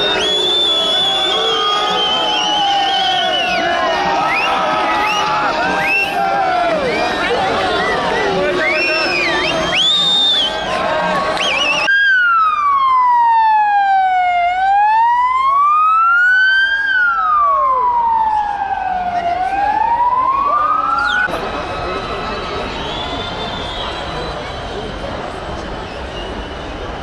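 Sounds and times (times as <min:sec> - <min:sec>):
ambulance siren wailing: 0:00.0 - 0:09.5, 0:11.5 - 0:22.7
crowd shouting and cheering: 0:00.0 - 0:14.4, 0:16.0 - 0:27.0.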